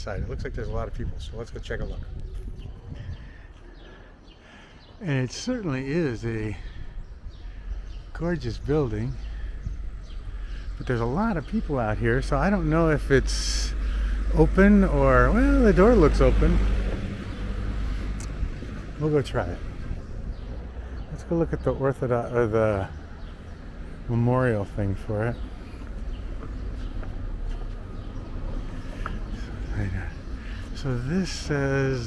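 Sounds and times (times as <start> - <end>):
low street rumble with hiss: 4.4 - 32.0.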